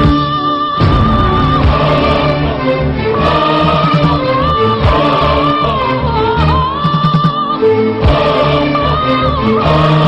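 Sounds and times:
choir singing: 0:00.0 - 0:10.0.

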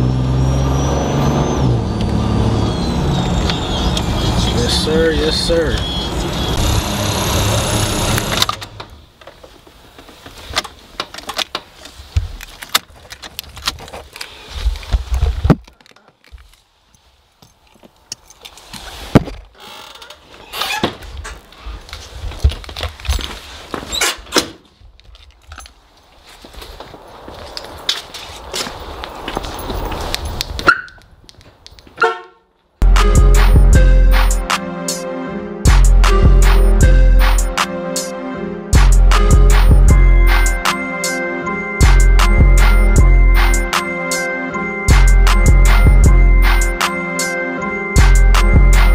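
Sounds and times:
car cabin road and engine noise: 0:00.0 - 0:16.5.

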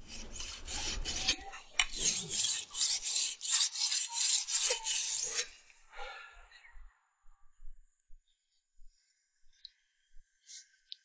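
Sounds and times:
knife sharpened on whetstone: 0:00.1 - 0:05.6.

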